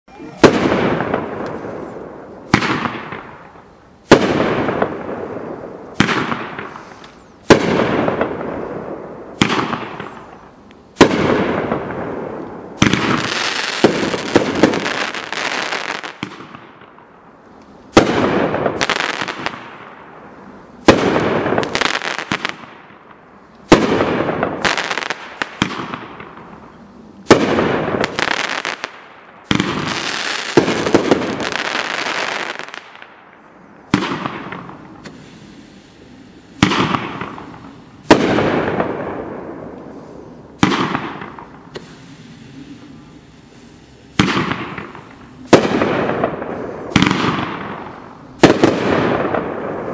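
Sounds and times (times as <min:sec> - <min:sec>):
fireworks bangs: 0:00.1 - 0:17.1, 0:17.9 - 0:20.2, 0:20.8 - 0:49.9
fireworks crackling pops: 0:00.1 - 0:49.9.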